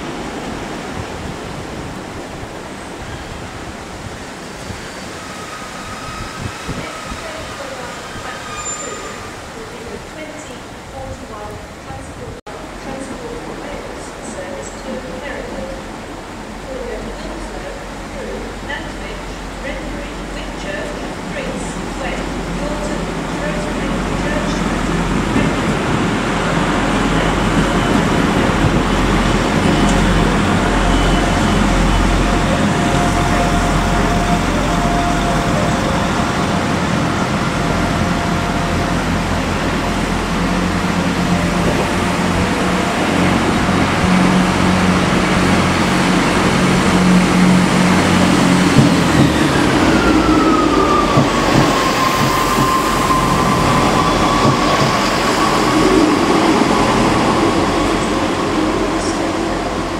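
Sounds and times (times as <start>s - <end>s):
train engines and wheels rumbling: 0.0s - 59.9s.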